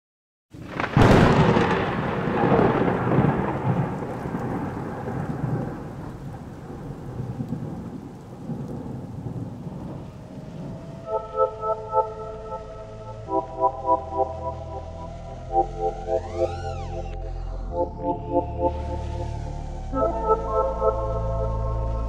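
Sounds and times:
thunder crash rumbling: 0.6s - 11.1s
rain-like hiss: 0.6s - 13.3s.

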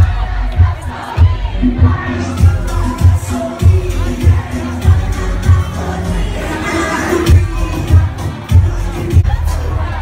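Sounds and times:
crowd shouting and cheering: 0.0s - 10.0s
dance music with heavy bass: 0.0s - 10.0s.

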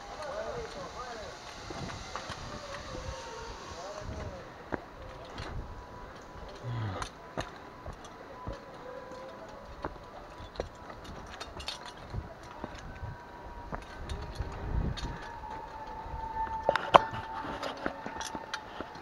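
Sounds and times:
footsteps on stone steps: 4.7s - 14.0s.

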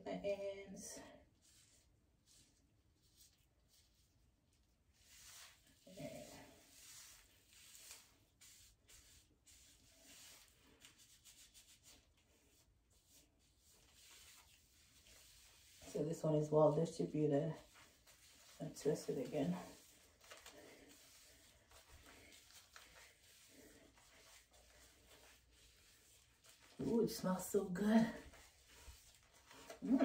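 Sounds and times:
hands rubbing hair: 1.4s - 30.0s.

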